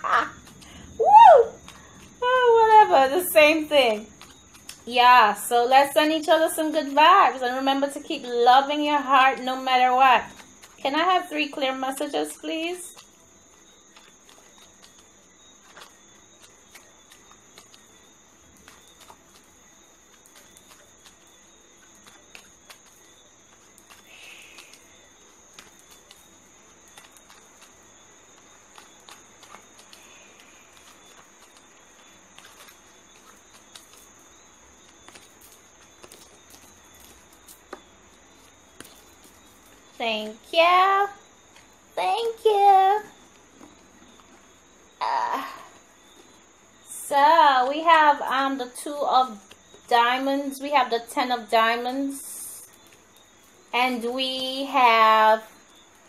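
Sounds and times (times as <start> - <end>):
steady hiss: 0.0 - 56.0.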